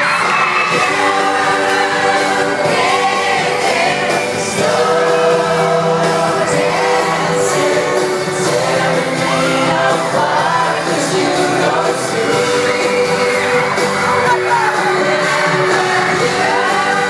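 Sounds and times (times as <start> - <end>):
vocal group singing with band: 0.0 - 17.0.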